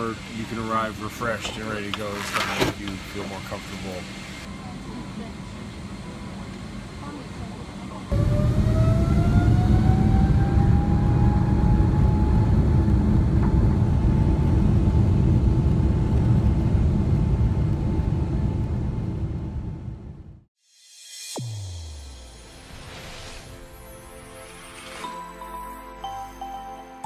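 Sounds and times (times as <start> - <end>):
jet engines rumbling in cabin: 0.0 - 20.5
engine whine rising in pitch: 7.9 - 20.5.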